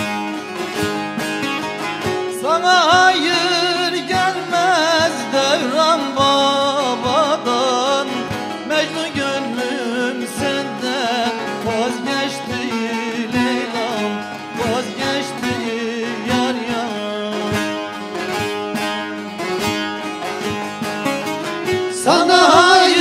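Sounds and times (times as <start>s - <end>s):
plucked lutes playing: 0.0s - 23.0s
man singing: 2.3s - 18.0s, 21.9s - 23.0s.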